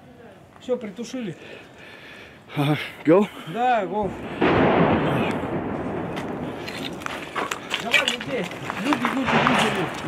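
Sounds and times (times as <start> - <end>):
explosion rumble: 4.0 - 7.4, 9.2 - 10.0.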